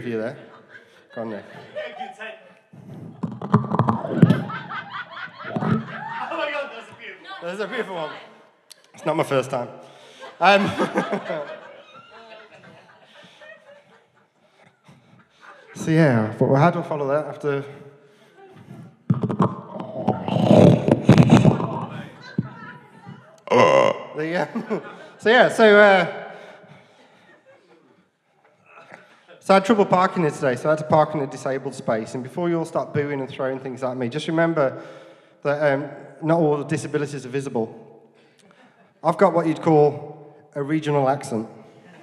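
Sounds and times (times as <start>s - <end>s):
audience laughing: 0.0s - 8.1s, 9.0s - 16.5s, 18.1s - 29.5s, 41.7s - 42.0s
microphone handling clicks and knocks: 2.8s - 4.5s, 5.4s - 5.9s, 19.1s - 23.2s.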